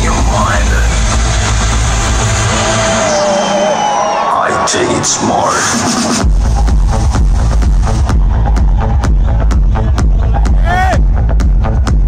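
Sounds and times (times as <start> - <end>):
techno music with distorted bass: 0.0 - 12.0.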